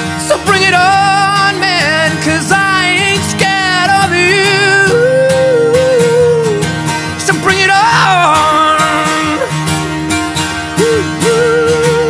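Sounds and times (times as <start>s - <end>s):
acoustic guitar: 0.0s - 12.0s
man singing a held note: 10.8s - 12.0s.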